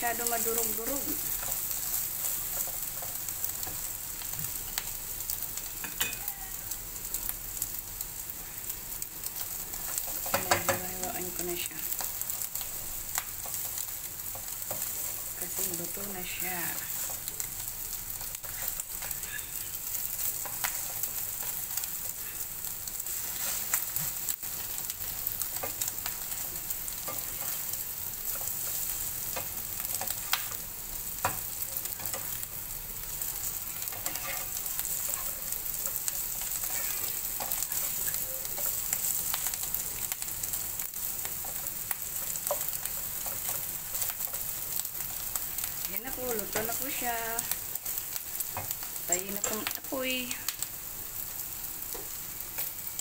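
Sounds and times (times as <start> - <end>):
eggs sizzling in a pan: 0.0 - 53.0
spatula scraping and tapping pan: 9.7 - 11.0, 33.8 - 39.6.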